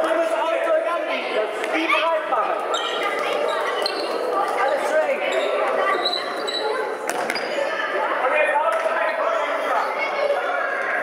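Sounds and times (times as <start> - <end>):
echoing voices: 0.0 - 11.0
shoes squeaking on floor: 2.6 - 7.7.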